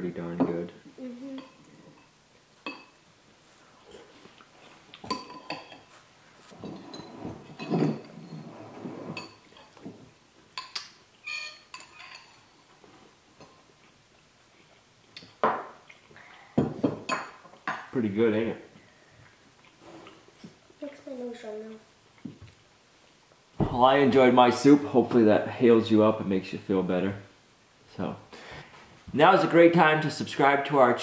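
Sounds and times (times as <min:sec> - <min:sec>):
eating sounds: 0:13.7 - 0:16.6.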